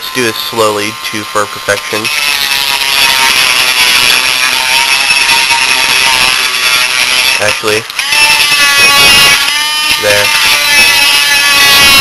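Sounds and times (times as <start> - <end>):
rotary tool grinding plastic: 1.1 - 12.0.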